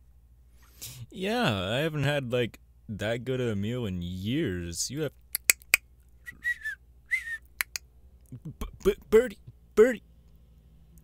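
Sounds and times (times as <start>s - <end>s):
quick clicks: 5.3s - 5.8s
person whistling short notes: 6.2s - 7.8s.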